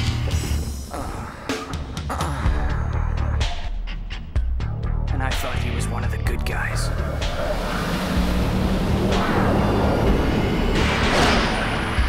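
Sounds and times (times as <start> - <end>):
background score music: 0.0 - 12.0
whooshes: 6.8 - 12.0
cartoon hover-car engine drone: 7.0 - 12.0.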